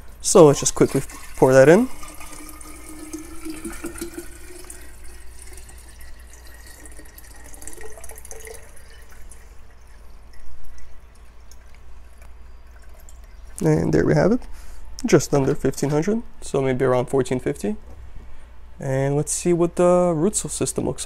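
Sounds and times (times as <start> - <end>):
liquid pouring into plastic container: 0.4 - 13.6.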